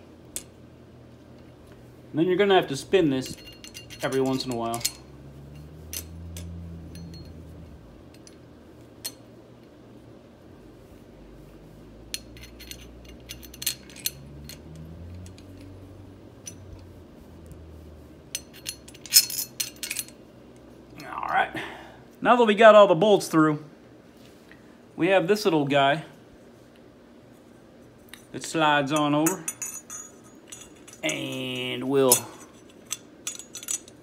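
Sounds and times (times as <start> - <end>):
faint low hum: 0.0 - 34.0
bolts and nuts clinking on metal: 2.4 - 9.8, 12.0 - 16.9, 18.2 - 21.3, 28.0 - 34.0.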